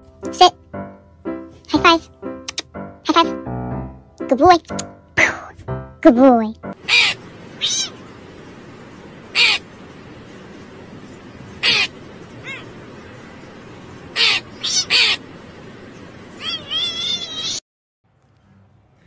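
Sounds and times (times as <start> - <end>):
crow cawing: 6.8 - 8.2, 9.2 - 9.8, 11.5 - 13.3, 14.1 - 15.3
steady hiss: 6.8 - 17.6.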